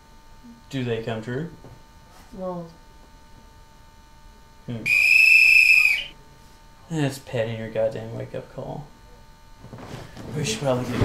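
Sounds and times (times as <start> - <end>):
high-pitched whistle blast: 4.8 - 6.2.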